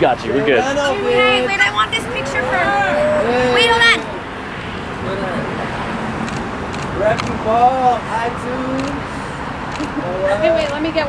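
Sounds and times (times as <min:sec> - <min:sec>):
faint voices: 0:00.0 - 0:06.0
outdoor background noise: 0:00.0 - 0:11.0
short sharp clicks: 0:06.2 - 0:07.4.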